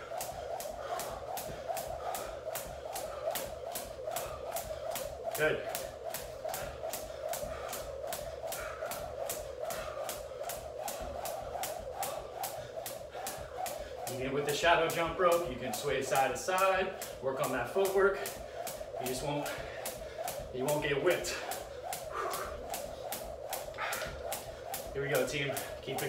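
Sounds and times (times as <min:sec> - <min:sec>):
jump rope slapping wood floor: 0:00.0 - 0:26.0
steady humming tone: 0:00.0 - 0:26.0.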